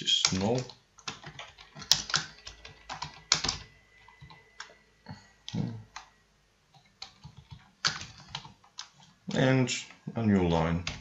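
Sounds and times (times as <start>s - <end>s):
computer keyboard typing: 0.2s - 4.8s, 5.4s - 6.1s, 6.7s - 9.2s, 10.8s - 11.0s.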